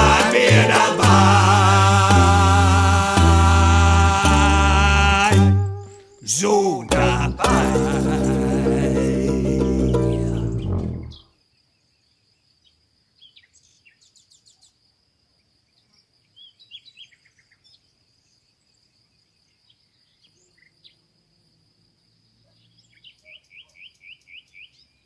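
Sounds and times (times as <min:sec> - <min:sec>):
steady high thin tone: 0:00.0 - 0:11.2.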